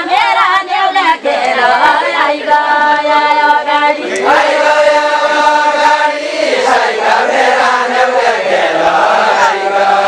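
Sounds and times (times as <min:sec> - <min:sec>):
group singing in unison: 0:00.0 - 0:10.0.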